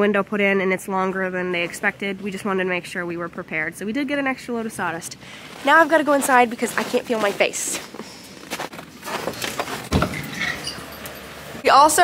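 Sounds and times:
clothing rustling: 0:05.3 - 0:11.0
footsteps: 0:05.4 - 0:11.0.

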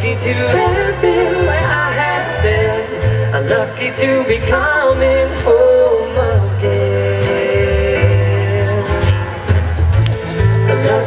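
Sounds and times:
accordion: 0:00.0 - 0:11.0
sustained bass notes: 0:00.0 - 0:11.0.

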